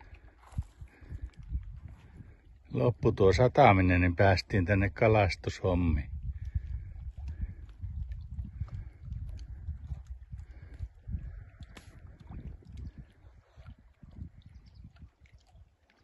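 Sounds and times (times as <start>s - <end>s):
wind buffeting microphone: 0.0s - 15.8s.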